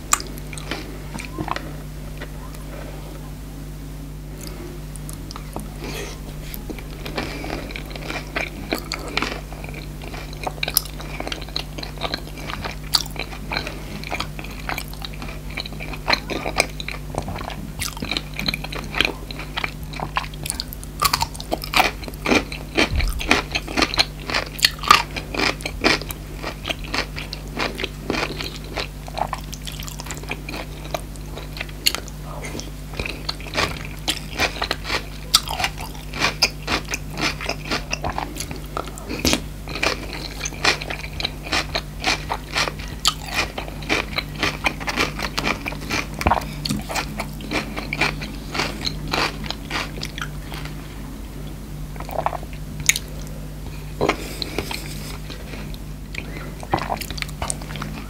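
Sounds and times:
faint low hum: 0:00.0 - 0:58.0
crunchy chewing and biting: 0:04.3 - 0:51.0, 0:51.9 - 0:58.0.

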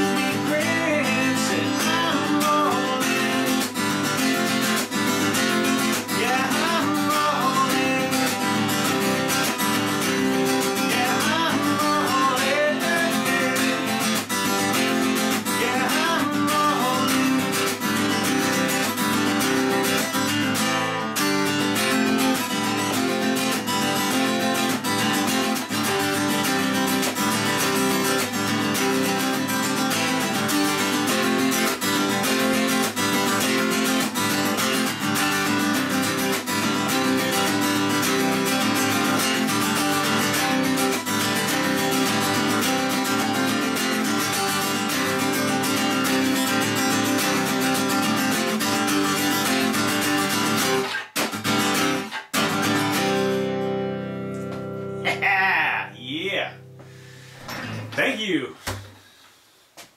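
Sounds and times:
acoustic guitar strumming chords: 0:00.0 - 0:58.9.

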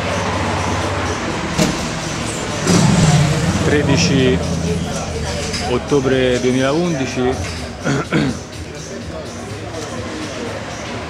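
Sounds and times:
street traffic rushing: 0:00.0 - 0:09.6.

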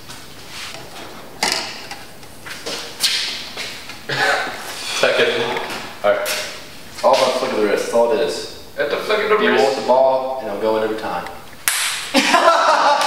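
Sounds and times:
voices: 0:04.1 - 0:11.4.

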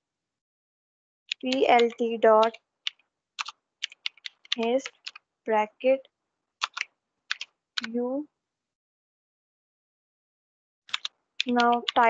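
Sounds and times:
computer keyboard keystrokes: 0:01.3 - 0:05.2, 0:06.6 - 0:07.9, 0:10.9 - 0:12.0.

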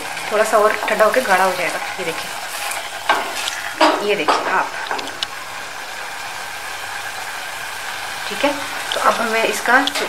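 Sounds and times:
jam hissing in a saucepan: 0:00.0 - 0:10.0.

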